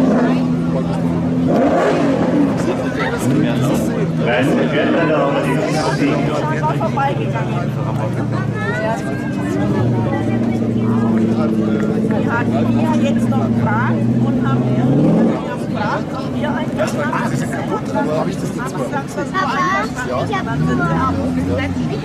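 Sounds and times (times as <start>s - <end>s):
crowd chatter: 0.0s - 22.0s
race car engine running: 0.0s - 22.0s.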